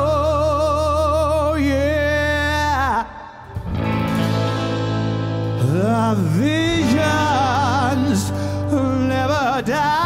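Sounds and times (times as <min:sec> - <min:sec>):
man singing with vibrato: 0:00.0 - 0:03.9, 0:05.4 - 0:10.0
guitar and bass accompaniment: 0:00.0 - 0:10.0.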